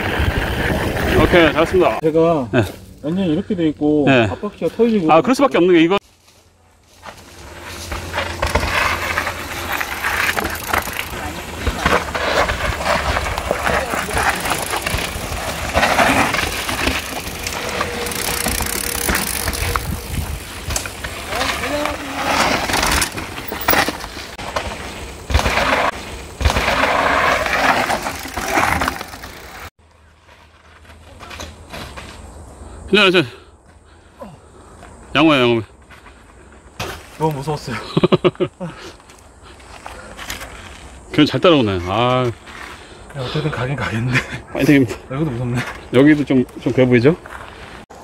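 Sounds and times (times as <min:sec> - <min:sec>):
mountain bike rattling on trail: 0:04.0 - 0:32.7, 0:39.0 - 0:48.0.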